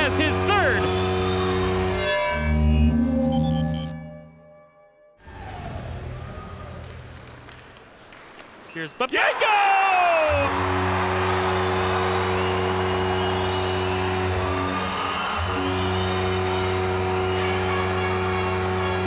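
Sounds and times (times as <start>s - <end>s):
crowd cheering: 0.0s - 2.0s, 5.3s - 19.0s
goal horn low steady tone: 15.3s - 19.0s.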